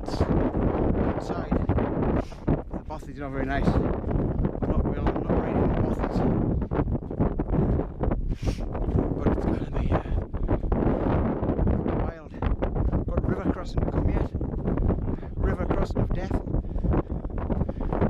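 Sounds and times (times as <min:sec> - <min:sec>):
deep rumble: 0:00.0 - 0:18.0
wind buffeting microphone: 0:00.0 - 0:18.0.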